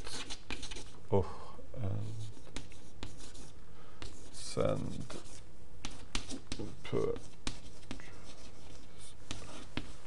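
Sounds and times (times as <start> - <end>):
chalk scratching on chalkboard: 0.0 - 1.0, 2.0 - 10.0.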